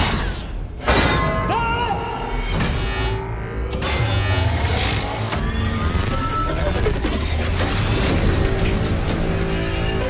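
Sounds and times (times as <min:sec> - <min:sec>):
music: 0:00.1 - 0:10.0.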